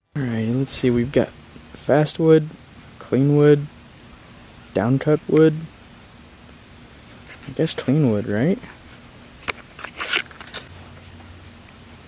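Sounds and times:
scraping rustle: 8.6 - 11.6.

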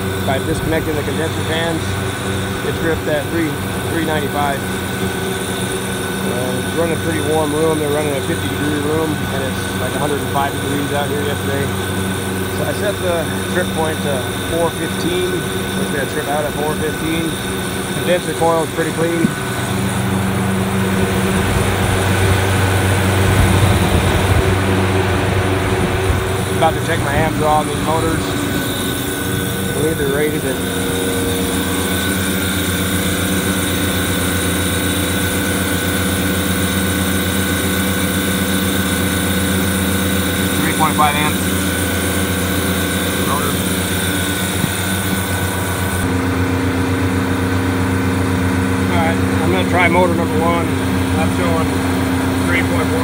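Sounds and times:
compressor and fan hum: 0.0 - 53.0
refrigeration unit droning: 0.0 - 53.0.

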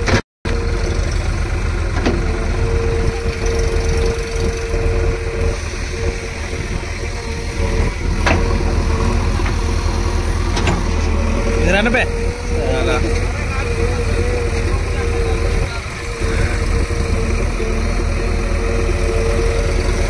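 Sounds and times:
diesel engines running: 0.0 - 20.0
engine whine: 0.0 - 20.0.

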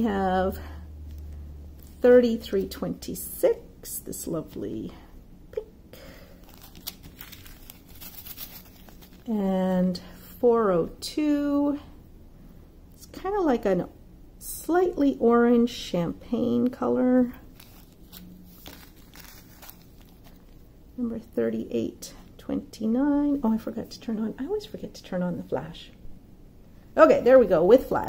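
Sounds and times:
thin plastic crinkling: 6.0 - 9.3, 17.2 - 20.7
plastic bags rustling: 6.2 - 9.3, 17.4 - 20.6.

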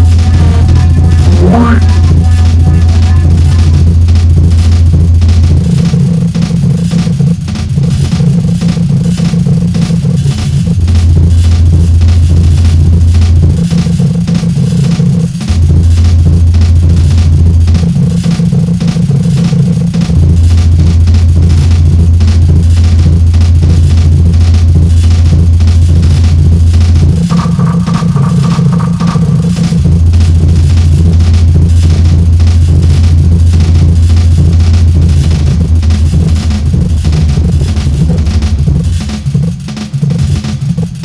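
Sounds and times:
short high-pitched tone: 0.0 - 3.8
heavy bass drone: 0.0 - 6.9, 28.4 - 40.5
fast ticking percussion: 0.0 - 41.0.

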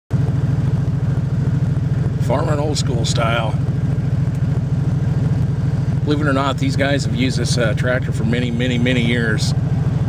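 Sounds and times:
tractor engine running: 0.1 - 10.0.

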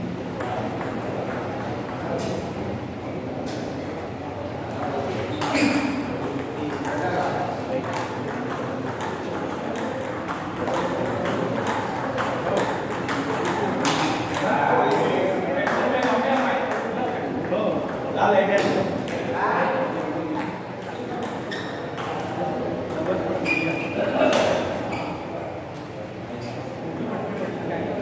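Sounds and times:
voices in a hall: 0.0 - 28.0.

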